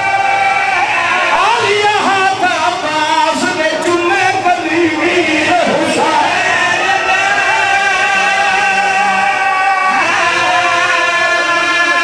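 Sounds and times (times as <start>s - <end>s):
man chanting into microphones: 0.0s - 12.0s.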